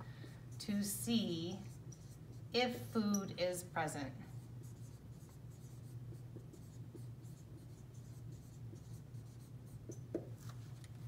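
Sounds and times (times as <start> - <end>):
steady low hum: 0.0 - 11.0
marker strokes on whiteboard: 0.2 - 2.7, 4.2 - 10.6.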